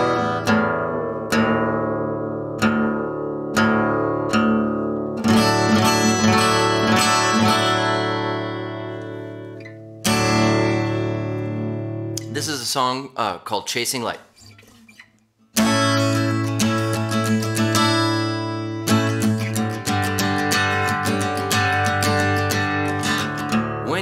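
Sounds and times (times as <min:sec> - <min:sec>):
acoustic guitar chords and picking: 0:00.0 - 0:13.0, 0:14.3 - 0:24.0.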